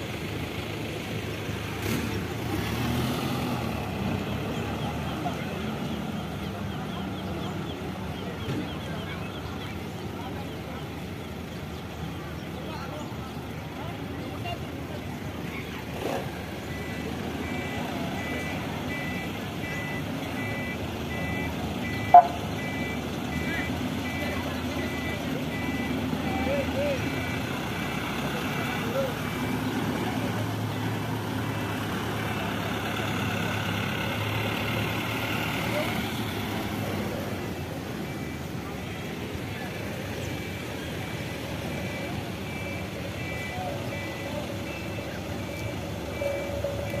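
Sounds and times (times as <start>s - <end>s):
truck engines running: 0.0s - 47.0s
reversing beeper: 16.6s - 34.2s, 34.8s - 47.0s.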